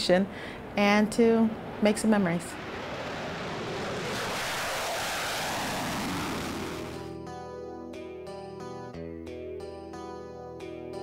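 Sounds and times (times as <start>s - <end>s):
jet engine roar: 1.5s - 7.2s.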